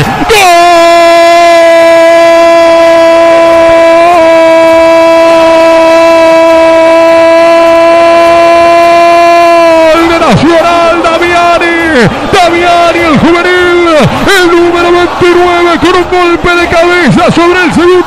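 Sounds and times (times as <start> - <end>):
commentator shouting: 0.0 - 18.0
commentator's long goal cry: 0.0 - 18.0.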